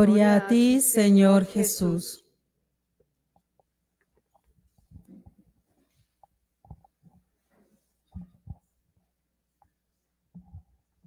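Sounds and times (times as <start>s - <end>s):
soft rustle of movement: 4.1s - 11.0s.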